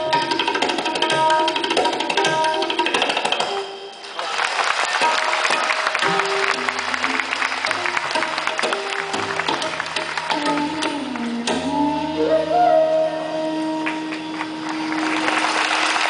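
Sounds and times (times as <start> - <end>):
bamboo flute melody: 0.0 - 4.3, 5.0 - 16.0
audience applause: 4.0 - 11.2, 13.8 - 16.0.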